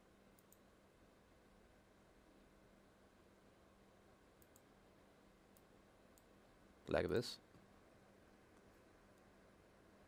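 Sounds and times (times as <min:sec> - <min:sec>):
computer mouse clicks: 0:00.4 - 0:00.7, 0:04.4 - 0:04.7.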